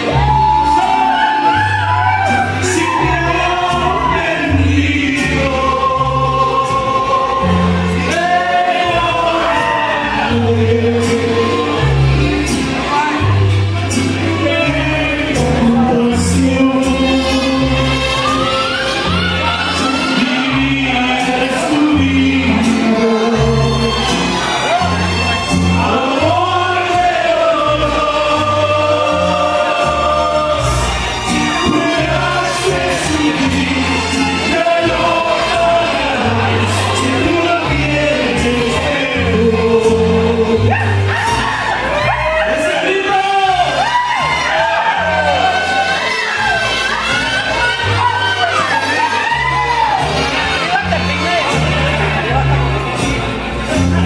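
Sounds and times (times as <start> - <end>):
man singing into a microphone: 0.0 - 13.5, 14.1 - 49.8
amplified backing music: 0.0 - 54.0.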